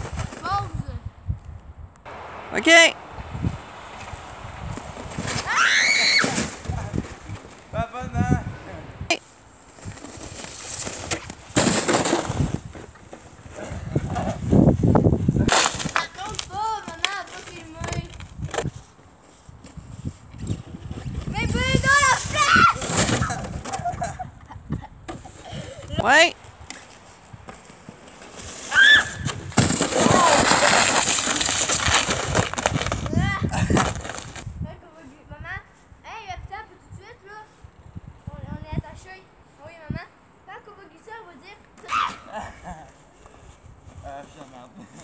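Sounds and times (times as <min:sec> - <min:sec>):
child shrieking: 0:05.4 - 0:06.5, 0:22.3 - 0:22.8, 0:28.7 - 0:29.2, 0:41.8 - 0:42.4.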